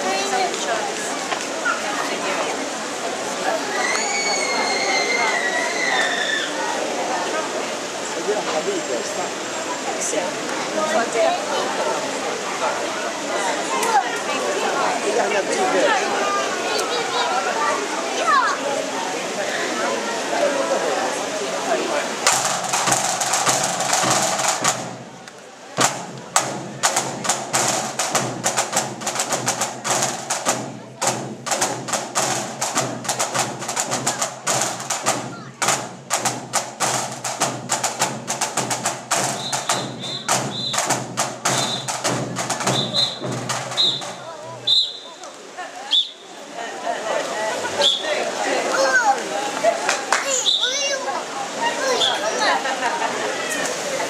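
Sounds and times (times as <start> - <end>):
audience voices: 0.0 - 54.0
marching drum band: 22.2 - 45.1.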